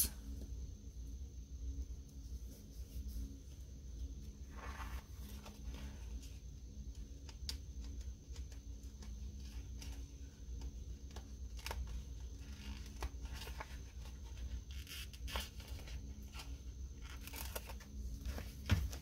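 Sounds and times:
paper stickers peeling and rustling: 0:07.2 - 0:19.0.

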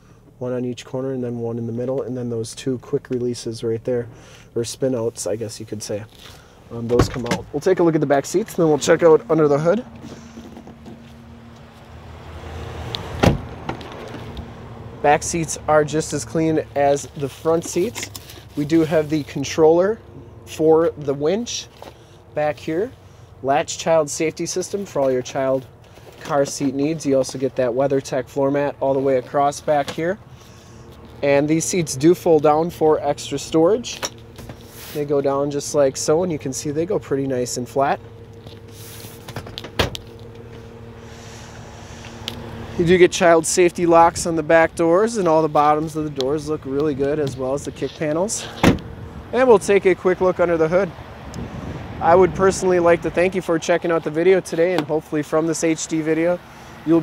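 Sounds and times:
car door shutting: 0:06.8 - 0:07.6, 0:13.0 - 0:14.4, 0:38.5 - 0:40.7, 0:48.4 - 0:49.0
car seatback latching clunk: 0:13.1 - 0:14.2, 0:39.3 - 0:40.1, 0:48.5 - 0:48.9
wind noise: 0:51.2 - 0:53.3.

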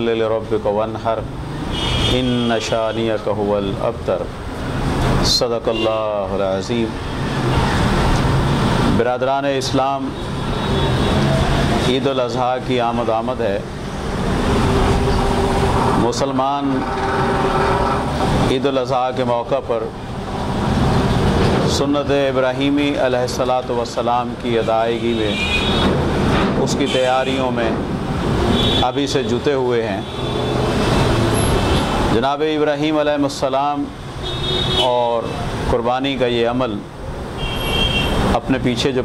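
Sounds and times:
traffic noise: 0:00.0 - 0:39.0
motor vehicle running: 0:13.8 - 0:18.7.

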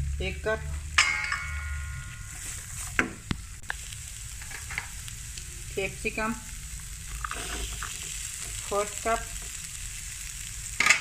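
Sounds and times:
low sizzle: 0:00.0 - 0:11.0
spatula stirring cabbage in pan: 0:02.3 - 0:03.0, 0:06.8 - 0:08.8, 0:09.4 - 0:11.0.

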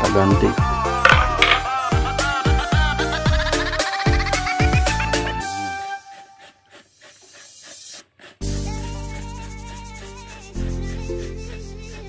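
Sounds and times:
background music: 0:00.0 - 0:06.6, 0:08.4 - 0:12.0.

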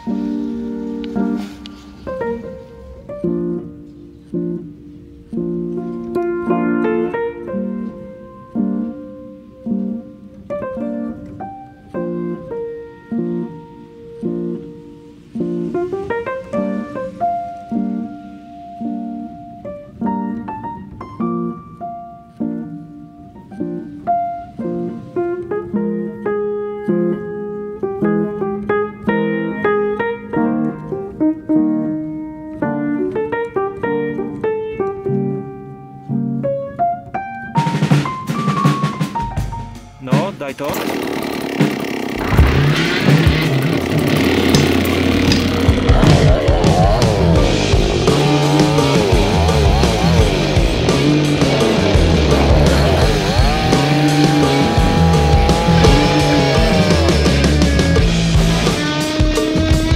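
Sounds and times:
plucked string and piano music: 0:00.0 - 0:40.7, 0:41.6 - 0:59.9
chainsaw revving: 0:40.2 - 0:59.1
heavy rock music: 0:42.2 - 0:59.9.

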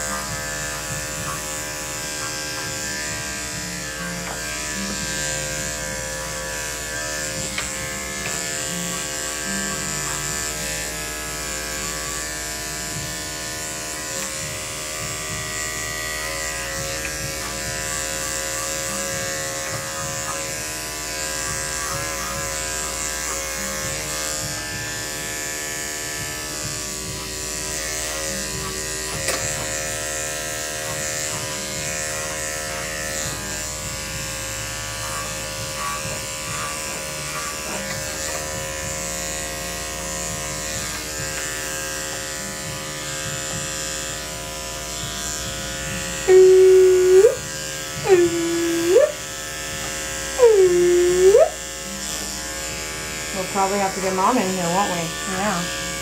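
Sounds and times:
electric clippers buzzing: 0:00.0 - 0:56.0.

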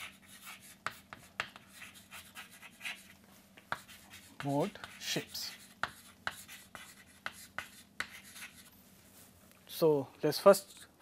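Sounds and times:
chalk tapping and scratching: 0:00.0 - 0:08.8, 0:10.5 - 0:11.0.

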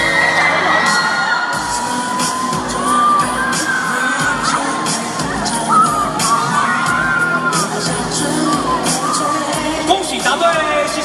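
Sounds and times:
audience cheering: 0:00.0 - 0:09.5
pop music with steady beat: 0:00.0 - 0:11.0.

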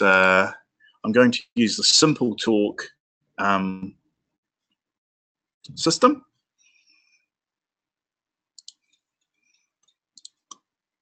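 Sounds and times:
faint computer mouse clicks: 0:08.6 - 0:09.0, 0:09.8 - 0:10.6.

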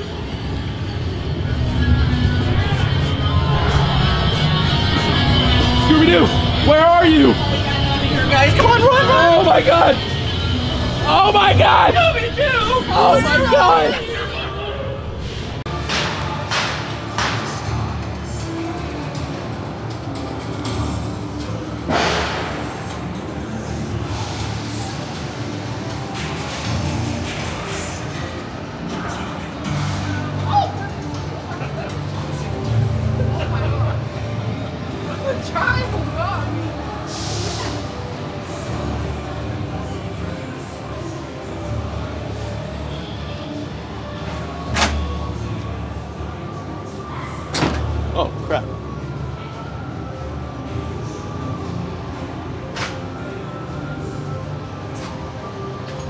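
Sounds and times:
low rumble: 0:00.0 - 0:08.9
low rumbling ambient drone: 0:00.0 - 0:35.4
eerie background soundtrack: 0:00.0 - 0:56.0
loud hiss of air: 0:37.0 - 0:38.0.

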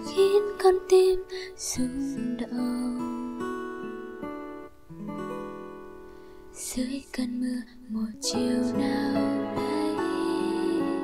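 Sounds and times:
acoustic guitar notes: 0:00.0 - 0:11.0.

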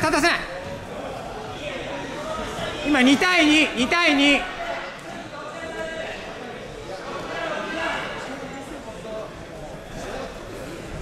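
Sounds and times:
murmur of voices in a hall: 0:00.0 - 0:11.0.

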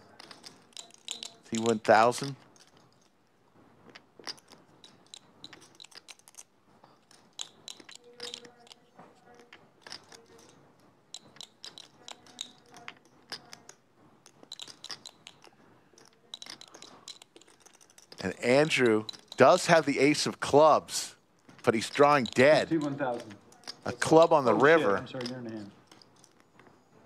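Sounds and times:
poker chips clicking: 0:00.0 - 0:03.2, 0:03.8 - 0:26.8.

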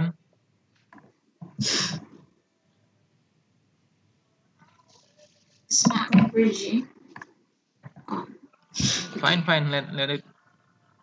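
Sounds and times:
person speaking over video call: 0:05.7 - 0:06.9, 0:08.0 - 0:10.2.

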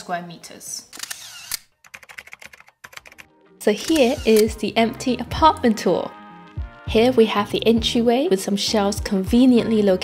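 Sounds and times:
keyboard typing: 0:01.8 - 0:04.5.

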